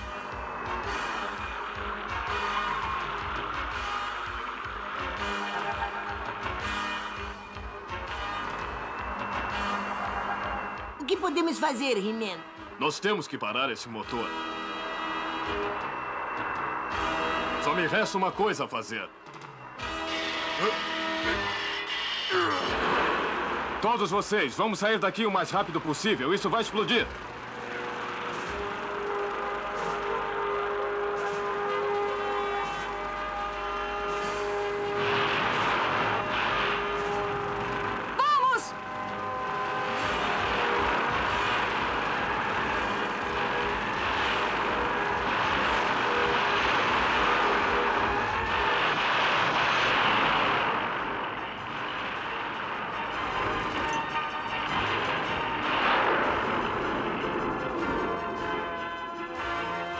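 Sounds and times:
dense noisy sound effects: 0.0 - 59.9
dramatic music: 0.0 - 59.9.

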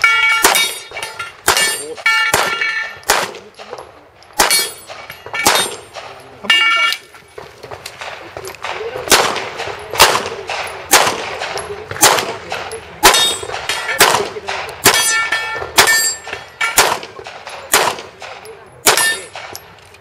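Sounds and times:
pistol shots: 0.0 - 6.2, 7.7 - 19.8
steel targets clanging: 0.0 - 7.3, 9.4 - 19.8.

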